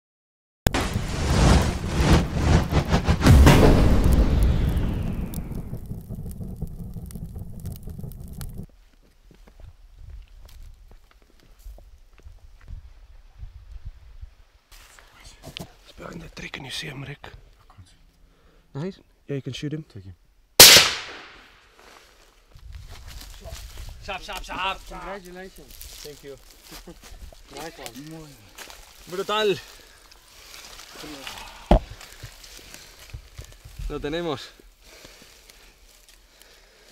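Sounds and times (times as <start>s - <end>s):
explosion boom with rumble: 0.7s - 8.7s
sharp crackles: 0.7s - 8.7s, 20.6s - 36.9s
rifle shot: 20.6s - 21.5s.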